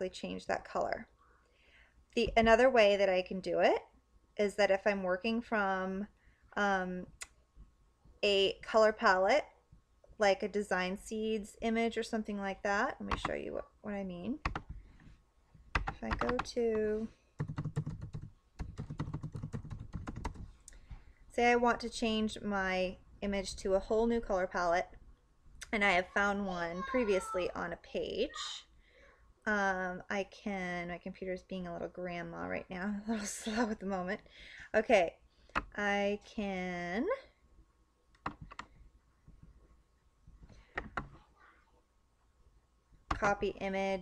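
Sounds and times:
typing on a keyboard: 14.4s - 14.8s, 15.8s - 16.6s, 17.4s - 20.5s, 38.2s - 38.7s.

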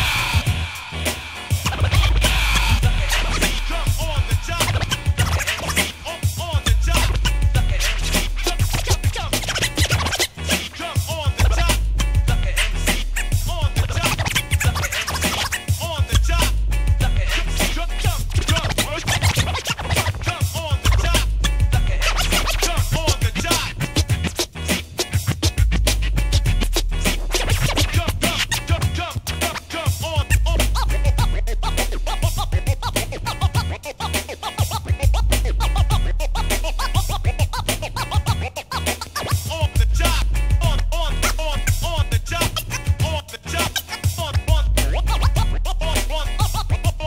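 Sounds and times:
deep bass: 0.0s - 19.6s, 20.7s - 24.8s, 25.4s - 43.7s, 44.3s - 47.0s
hip hop drum beat: 0.0s - 47.0s
record scratching on turntable: 0.0s - 47.0s.

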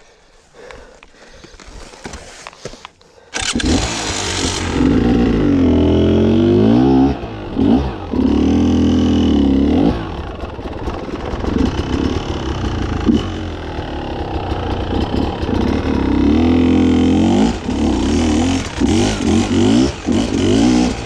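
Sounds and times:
motorcycle engine revving: 3.4s - 21.0s.

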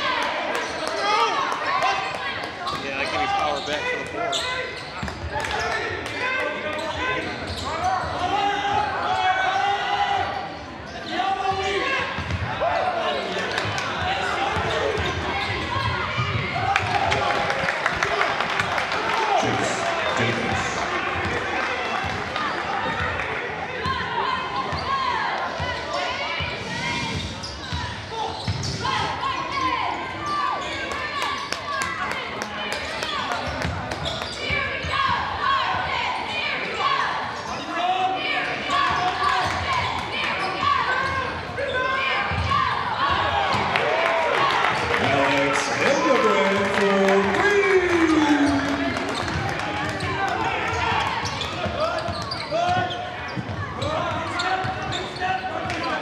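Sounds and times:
indistinct shouting and talk: 0.0s - 56.0s.

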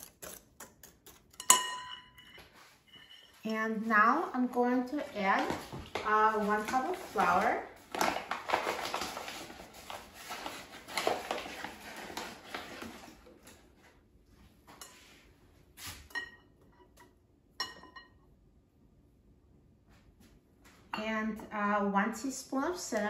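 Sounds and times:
paper flour bag rustling: 3.7s - 13.8s.

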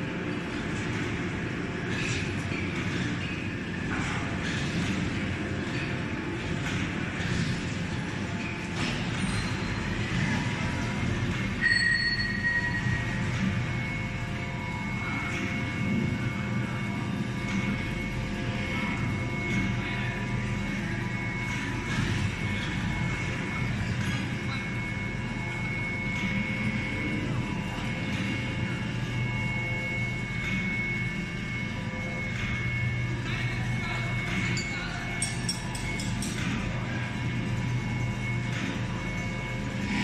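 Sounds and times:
machinery humming: 0.0s - 40.0s
steady tones over low drone: 0.0s - 40.0s.

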